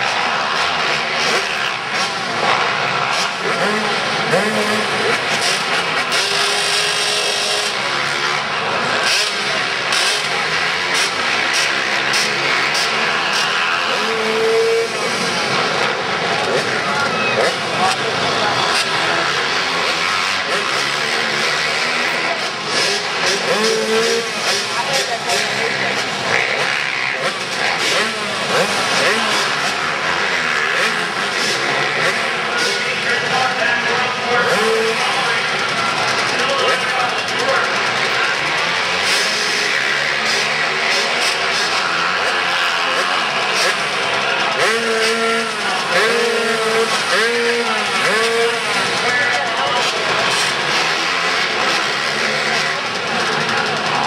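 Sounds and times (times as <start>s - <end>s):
pit bike engines revving: 0.0s - 54.0s.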